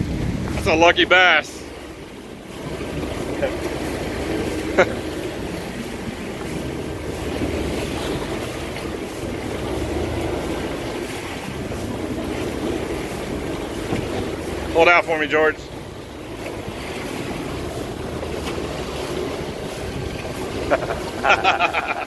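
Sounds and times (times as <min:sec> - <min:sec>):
wind on microphone: 0:00.0 - 0:01.0
sea water washing around boat: 0:00.0 - 0:22.0.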